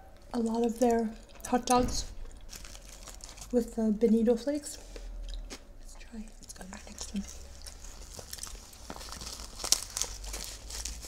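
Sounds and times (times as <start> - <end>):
seaweed sheet crinkling: 2.4 - 3.7, 6.9 - 11.0.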